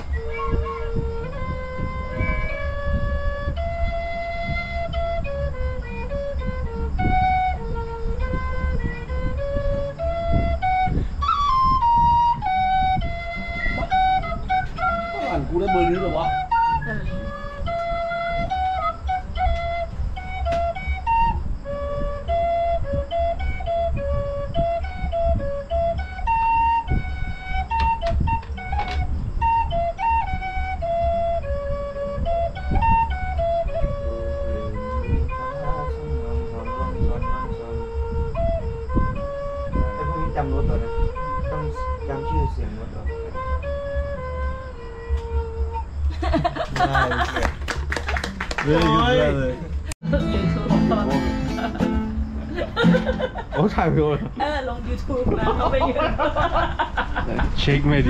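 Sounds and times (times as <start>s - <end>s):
wooden flute melody: 0.0s - 57.0s.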